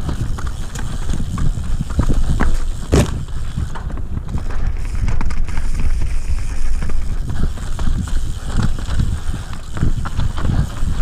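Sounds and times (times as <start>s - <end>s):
bike tyre rumble: 0.0s - 11.0s
wheels knocking on stones: 0.0s - 11.0s.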